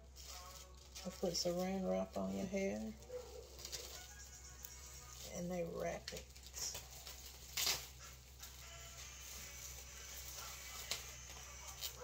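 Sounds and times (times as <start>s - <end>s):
plastic cling wrap crinkling: 0.0s - 12.0s.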